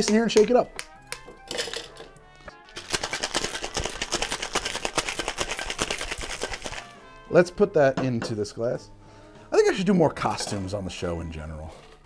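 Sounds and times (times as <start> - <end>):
ice rattling in cocktail shaker: 1.5 - 2.1, 2.7 - 7.0.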